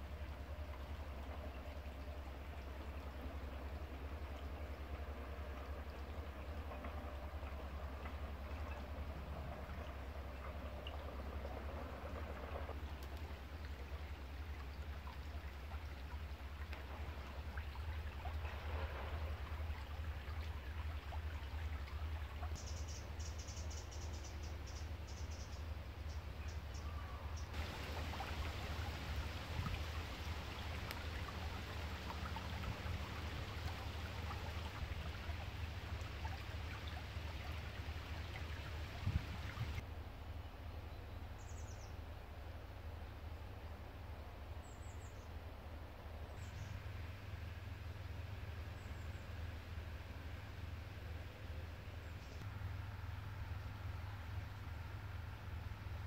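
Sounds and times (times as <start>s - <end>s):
brook babbling over pebbles: 0.0s - 39.9s.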